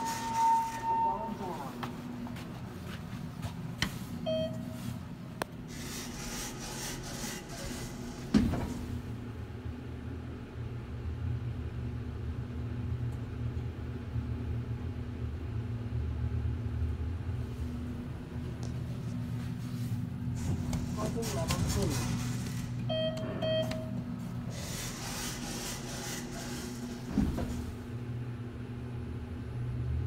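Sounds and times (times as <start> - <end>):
elevator doors sliding shut: 0.0 - 1.4, 5.7 - 9.2, 20.4 - 28.0
elevator button beep: 0.0 - 1.5, 4.2 - 4.8, 22.9 - 24.1
elevator rumble and hum: 0.0 - 30.0.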